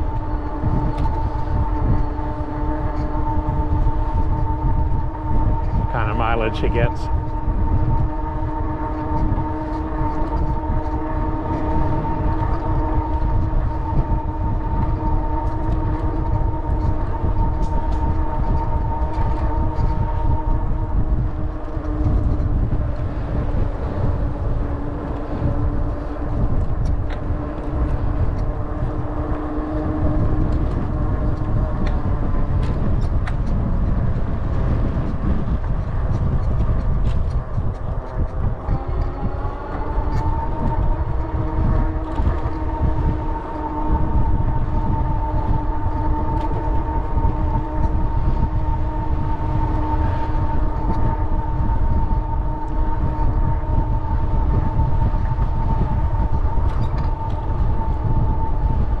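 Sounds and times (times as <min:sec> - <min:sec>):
multi-tone whine: 0:00.0 - 0:59.0
wind rushing over microphone: 0:00.0 - 0:59.0.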